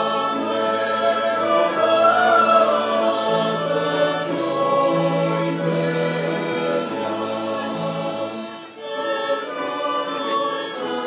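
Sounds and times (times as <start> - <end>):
choir singing a hymn: 0.0 - 11.0
flutes: 0.0 - 11.0
violins: 0.0 - 11.0.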